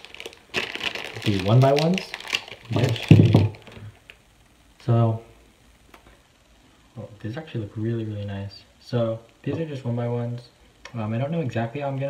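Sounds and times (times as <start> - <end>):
plastic packet crinkling: 0.0 - 4.2.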